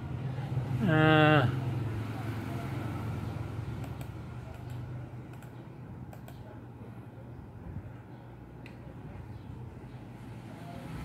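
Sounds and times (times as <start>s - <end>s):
computer mouse click: 3.8s - 6.5s.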